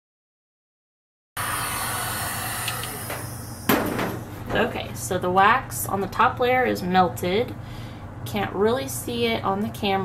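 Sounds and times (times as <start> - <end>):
heat gun blowing hot air: 1.4 - 4.1.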